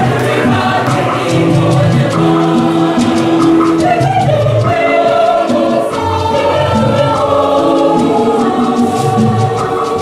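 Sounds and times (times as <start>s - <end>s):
choir singing a hymn: 0.0s - 10.0s
steady percussive beat: 0.0s - 10.0s.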